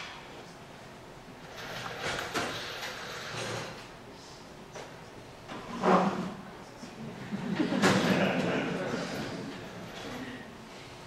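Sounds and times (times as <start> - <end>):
chair scraping on stage floor: 1.4 - 3.9, 5.5 - 6.5, 7.6 - 10.3.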